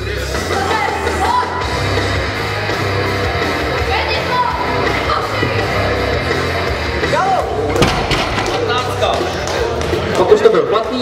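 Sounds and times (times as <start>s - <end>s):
barbell landing with heavy thud: 7.8s - 8.6s.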